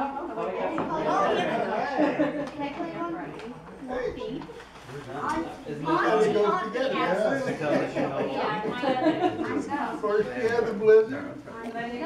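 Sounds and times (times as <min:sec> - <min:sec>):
people talking at once: 0:00.0 - 0:12.0.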